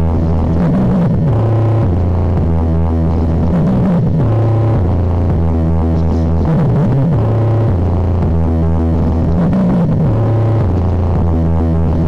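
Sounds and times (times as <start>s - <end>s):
electronic dance music: 0.0s - 12.0s
wobbling bass line: 0.0s - 12.0s.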